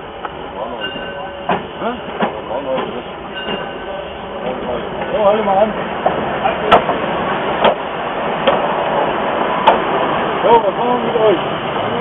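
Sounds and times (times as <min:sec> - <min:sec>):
steam locomotive rolling: 0:00.0 - 0:12.0
sharp knocks: 0:07.6 - 0:07.8, 0:09.6 - 0:09.9.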